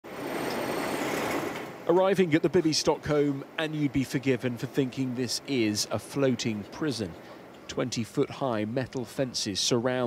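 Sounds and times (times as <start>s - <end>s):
van engine humming: 0.1s - 10.0s.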